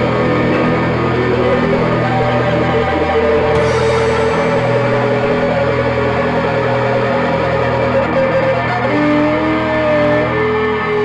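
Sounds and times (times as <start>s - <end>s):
droning electric guitars: 0.0s - 11.0s
steady low tone: 0.0s - 11.0s.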